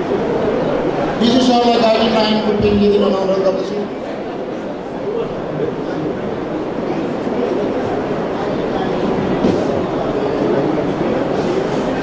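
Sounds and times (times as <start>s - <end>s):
babble of many people talking: 0.0s - 12.0s.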